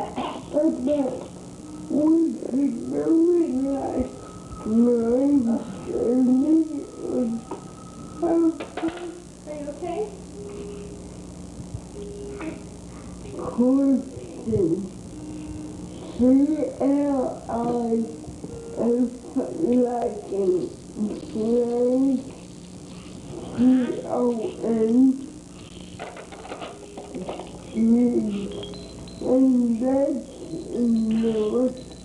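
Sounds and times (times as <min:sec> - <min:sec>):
steady low hum: 0:00.0 - 0:32.0
small child babbling: 0:12.3 - 0:12.7, 0:29.2 - 0:31.8.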